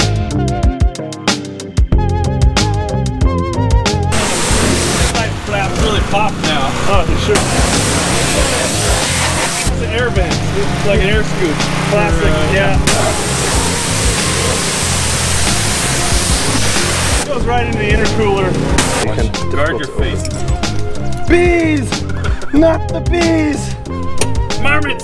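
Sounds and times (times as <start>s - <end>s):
background music with singing: 0.0s - 25.0s
pressure washer spraying water: 4.1s - 17.3s, 18.6s - 19.0s.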